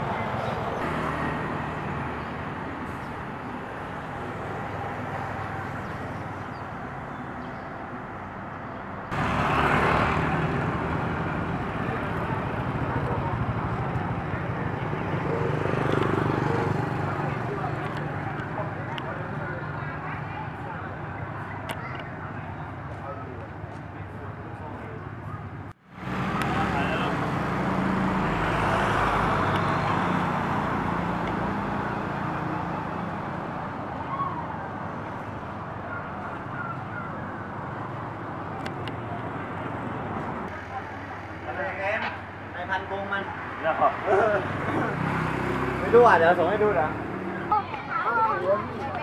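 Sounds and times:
road noise: 0.0 - 49.0
vehicle passing: 9.1 - 20.7, 25.9 - 49.0.

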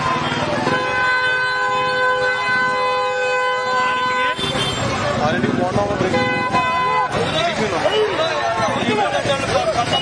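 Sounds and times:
street crowd voices: 0.0 - 10.0
vehicle horn blast: 0.6 - 4.9, 6.1 - 7.2.

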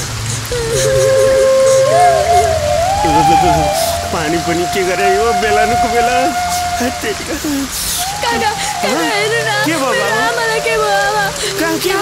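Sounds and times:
heavy rain pouring: 0.0 - 12.0.

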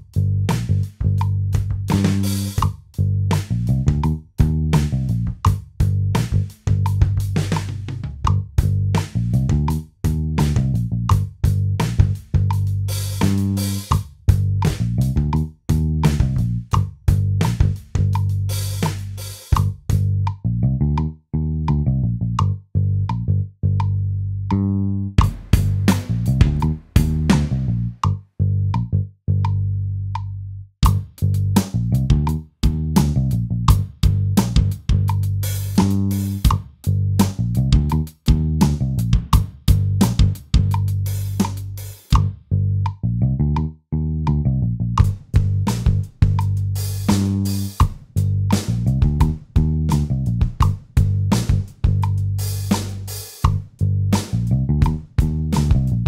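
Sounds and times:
looped bass line: 0.0 - 56.0
virtual acoustic drum hits: 25.2 - 27.8, 30.8 - 32.3, 50.5 - 53.6.

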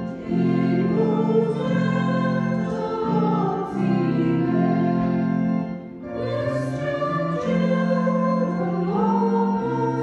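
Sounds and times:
small choir singing carol: 0.0 - 10.0.

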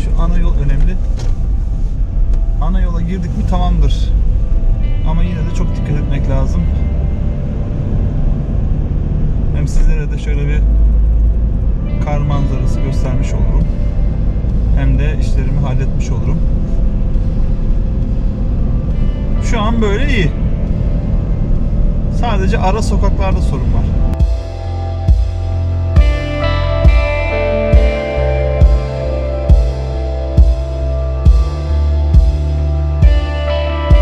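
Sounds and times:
car engine and tyre rumble: 0.0 - 34.0
music playing: 0.0 - 34.0.

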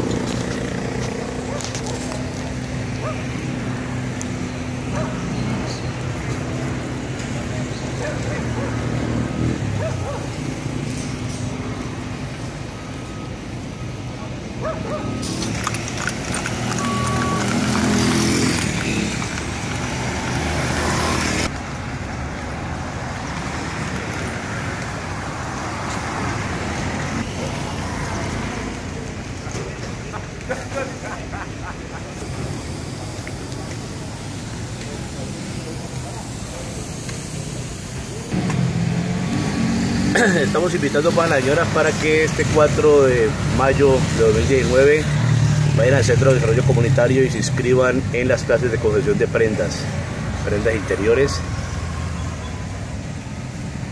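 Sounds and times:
dog barking: 1.4 - 2.3, 3.0 - 3.3, 4.9 - 5.3, 8.0 - 8.8, 9.8 - 10.3, 14.6 - 15.2.

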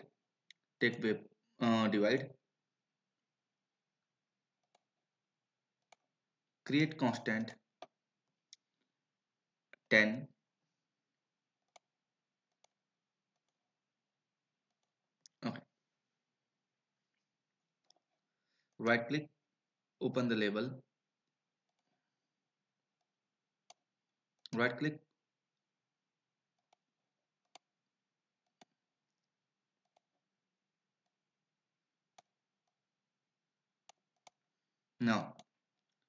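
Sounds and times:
computer mouse clicks: 4.6 - 4.9, 5.8 - 6.1, 11.7 - 13.6, 17.8 - 18.2, 28.4 - 28.8, 29.8 - 30.3, 33.8 - 34.4.

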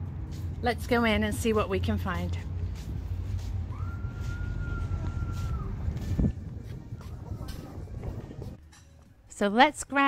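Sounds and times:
wind buffeting microphone: 3.0 - 8.7.

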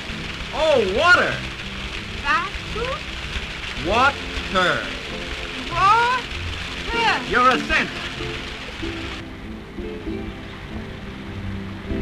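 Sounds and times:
music score: 0.0 - 12.0
water splashing: 0.0 - 12.0.

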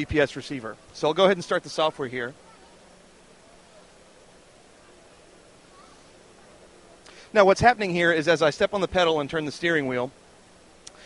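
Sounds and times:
faint distant voices: 0.0 - 10.4
steady hiss and low hum: 0.0 - 11.0.

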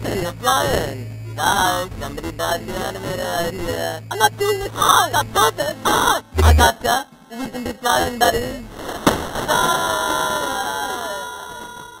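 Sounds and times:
steady held tones: 6.3 - 6.8.

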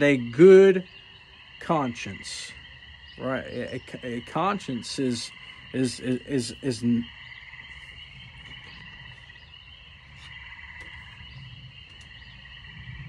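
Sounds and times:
frogs calling in a trill: 0.0 - 13.0
faint clicks: 11.8 - 12.3.

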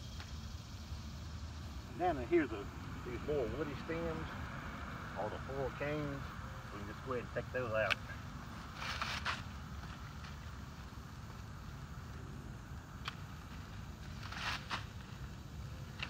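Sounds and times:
rustle of canes and leaves: 5.2 - 12.2, 13.0 - 16.0.

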